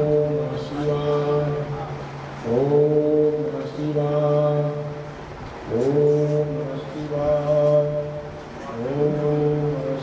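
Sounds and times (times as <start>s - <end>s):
man chanting: 0.0s - 5.1s, 5.7s - 10.0s.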